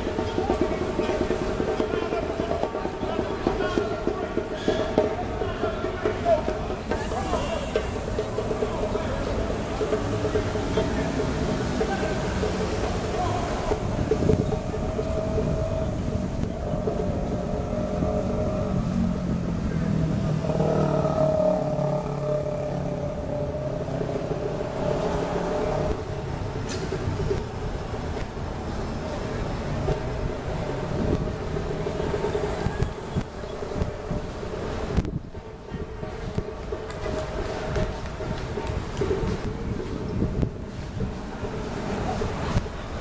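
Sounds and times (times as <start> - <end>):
car engines and tyres: 0.0 - 43.0
indistinct voices: 0.0 - 43.0.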